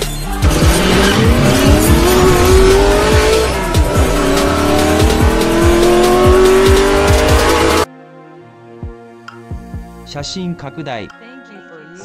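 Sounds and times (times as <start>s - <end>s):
electronic music with steady beat: 0.0s - 7.9s
racing car engine revving: 0.2s - 7.9s.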